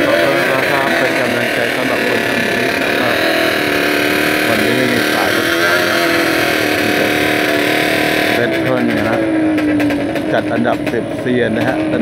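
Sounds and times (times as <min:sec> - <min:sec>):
two-stroke motorcycle engine revving: 0:00.0 - 0:12.0.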